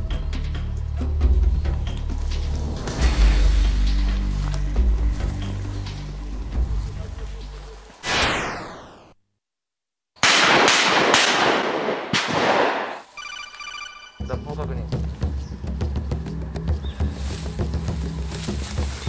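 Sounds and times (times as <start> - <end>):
background music: 0.0 - 8.1, 13.2 - 19.0
whoosh effect: 8.0 - 9.2
shotgun blasts echoing: 10.2 - 13.0.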